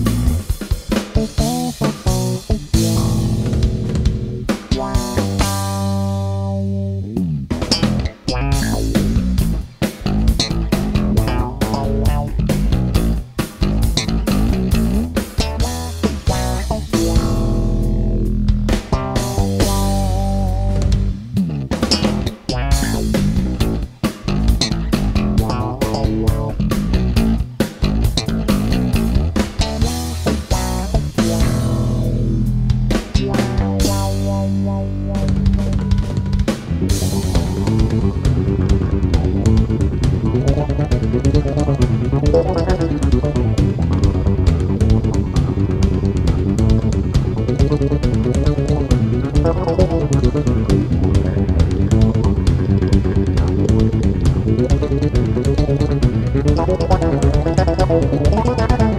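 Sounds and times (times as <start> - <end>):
electric bass played fingerstyle: 0.0 - 58.9.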